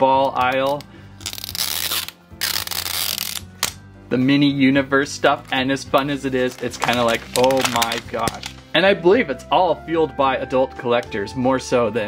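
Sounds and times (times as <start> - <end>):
adhesive strip peeling: 0.6 - 3.8.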